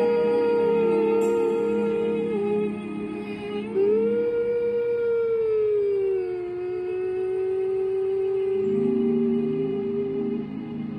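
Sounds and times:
person humming a long note: 0.0s - 10.9s.

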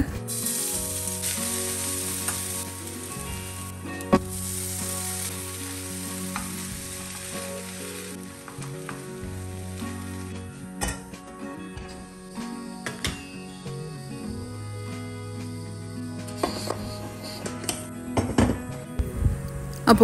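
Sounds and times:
chilli flakes sizzling in oil: 0.3s - 11.1s.

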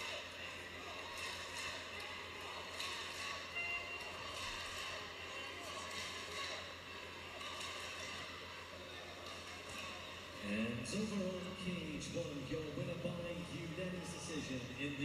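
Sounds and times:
murmur of voices in a hall: 0.0s - 15.0s.

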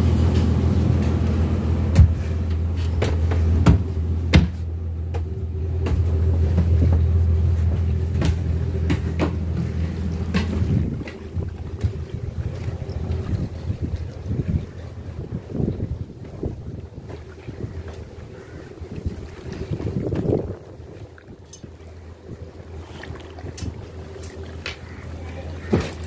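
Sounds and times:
boat engine humming: 0.0s - 26.0s
wind gusting on microphone: 9.4s - 22.6s.

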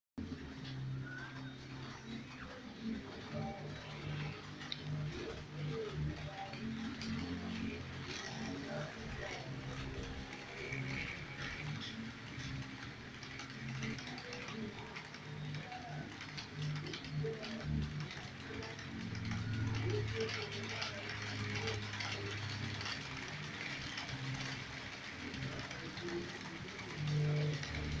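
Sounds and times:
model train clicking on track: 0.6s - 28.0s.

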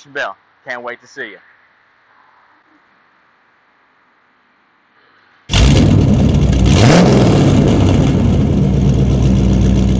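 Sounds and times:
engine revving: 5.5s - 9.9s.

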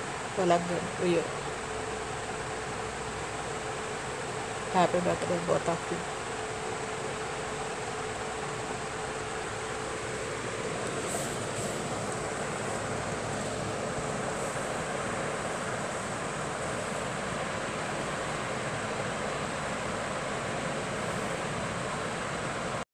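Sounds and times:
faint steady hum: 0.0s - 22.8s
steady hiss: 0.0s - 22.8s.

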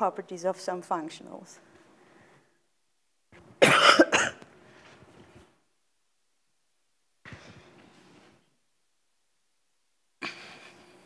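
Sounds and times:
person coughing harshly: 3.6s - 4.4s.

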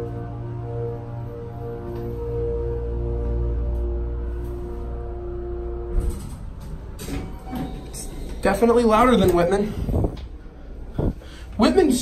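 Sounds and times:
elevator machine humming: 0.0s - 11.8s
elevator doors sliding open: 1.7s - 11.2s
elevator car clunk: 5.8s - 9.6s.

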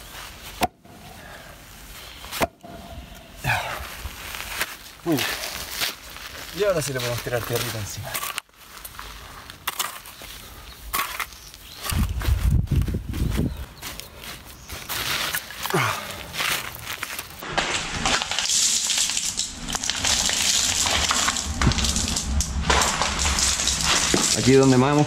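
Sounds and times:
shovel scraping soil: 9.6s - 10.2s, 10.9s - 12.0s, 16.4s - 25.0s.

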